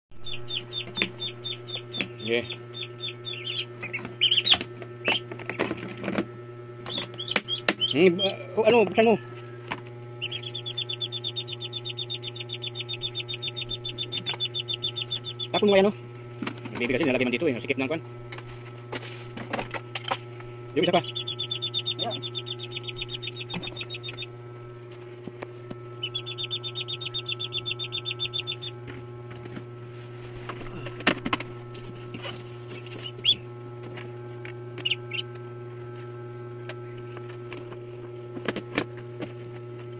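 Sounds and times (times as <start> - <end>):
steady low hum: 0.1 - 39.9
duckling peeping: 0.2 - 5.6, 6.8 - 9.2, 10.2 - 15.9, 20.8 - 24.4, 26.0 - 28.8, 32.7 - 33.5, 34.8 - 35.4.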